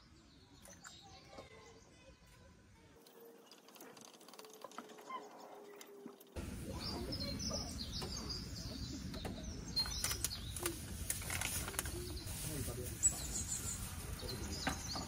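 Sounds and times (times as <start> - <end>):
birds chirping: 0.0 - 2.4, 3.0 - 15.0
outdoor background noise: 0.0 - 15.0.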